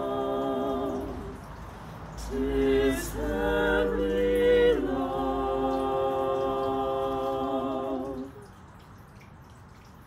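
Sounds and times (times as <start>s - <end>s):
choir singing a cappella: 0.0s - 1.4s, 2.2s - 8.4s
faint outdoor background noise: 0.0s - 10.0s.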